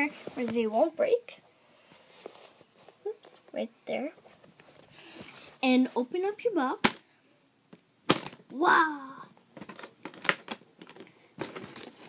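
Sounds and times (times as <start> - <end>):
items tapping and rattling: 9.5 - 12.0.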